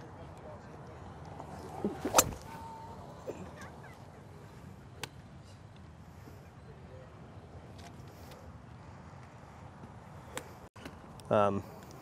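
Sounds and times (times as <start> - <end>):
golf club striking ball: 1.8 - 2.6.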